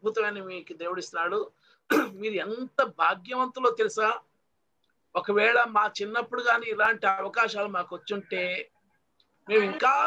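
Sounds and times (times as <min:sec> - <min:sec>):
person speaking: 0:00.0 - 0:04.2.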